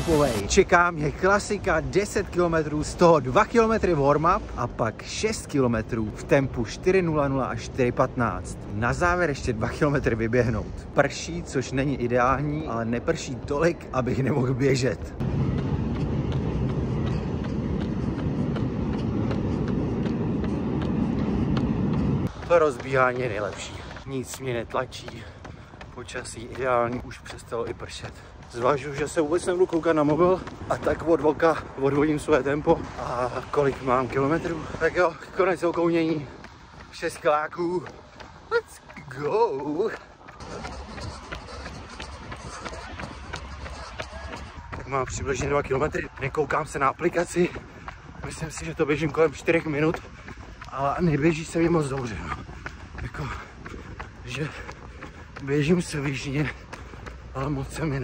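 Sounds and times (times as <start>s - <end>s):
steady low rumble: 0.0s - 39.4s
jogging footfalls: 0.0s - 58.0s.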